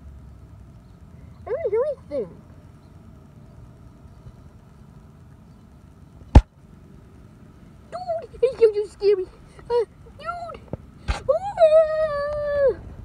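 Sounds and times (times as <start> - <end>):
faint hum: 0.0 - 13.0.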